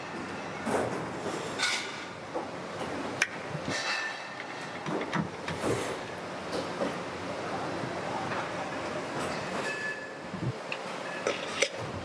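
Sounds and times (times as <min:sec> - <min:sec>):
fan motor parts clinking and rattling: 0:00.0 - 0:05.9, 0:09.2 - 0:12.0
workshop noise: 0:00.0 - 0:12.0.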